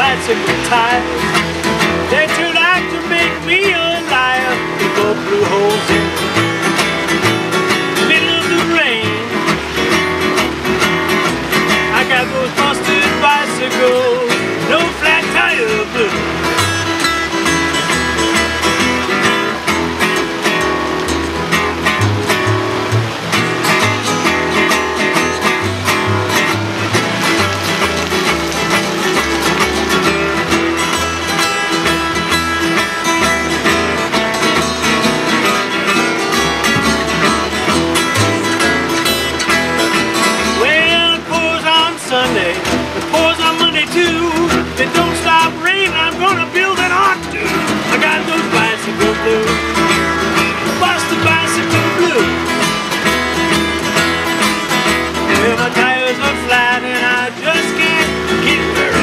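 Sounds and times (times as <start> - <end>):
acoustic guitars strumming: 0.0 - 59.0
upright bass plucking: 0.0 - 59.0.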